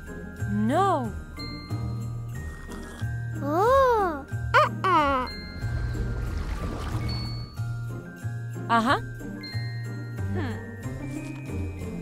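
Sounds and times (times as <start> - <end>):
light cartoon music with bells: 0.0 - 12.0.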